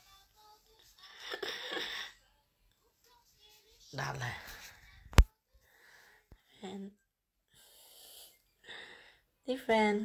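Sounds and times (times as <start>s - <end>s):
soft breaths: 3.3s - 9.4s.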